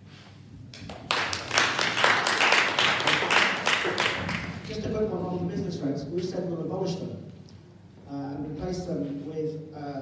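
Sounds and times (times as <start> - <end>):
audience applauding: 0.8 - 4.7.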